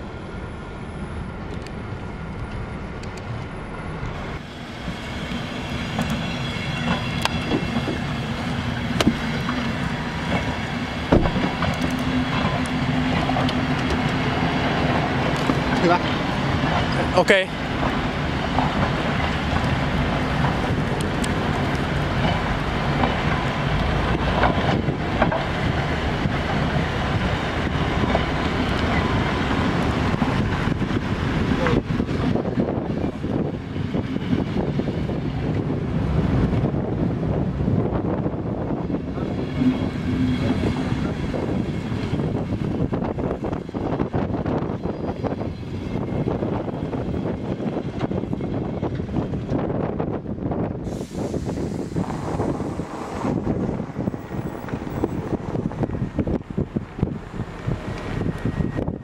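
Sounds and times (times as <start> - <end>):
train wheels rumbling on rails: 0.0 - 59.0
wind on microphone: 4.0 - 59.0.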